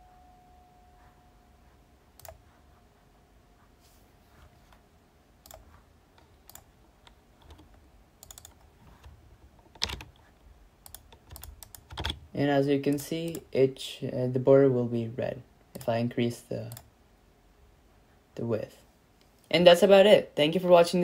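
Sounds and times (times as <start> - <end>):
computer mouse clicks: 2.2 - 2.4, 5.4 - 12.2
keyboard keystrokes: 7.4 - 9.1, 9.7 - 10.2, 10.8 - 12.2.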